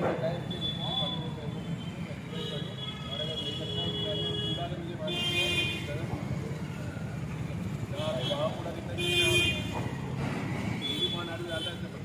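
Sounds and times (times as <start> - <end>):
road traffic: 0.0 - 12.0
vehicle horns honking: 0.5 - 6.0, 8.0 - 9.9.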